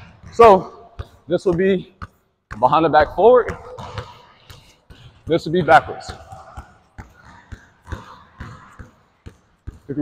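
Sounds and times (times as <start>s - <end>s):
basketball bouncing on court floor: 0.0s - 10.0s.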